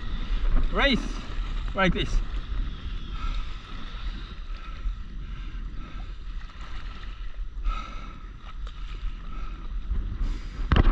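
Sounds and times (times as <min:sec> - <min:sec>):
water lapping and splashing: 0:00.0 - 0:10.9
wind rumbling on microphone: 0:00.0 - 0:10.9.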